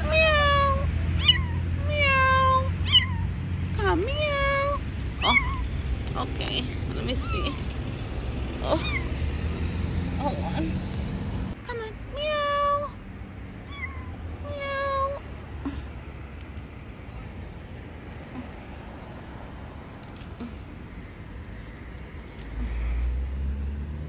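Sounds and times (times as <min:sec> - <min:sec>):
kitten meowing: 0:00.0 - 0:03.4, 0:04.1 - 0:05.7, 0:07.1 - 0:07.8, 0:08.6 - 0:09.1, 0:13.6 - 0:15.2
low background rumble: 0:00.0 - 0:23.4.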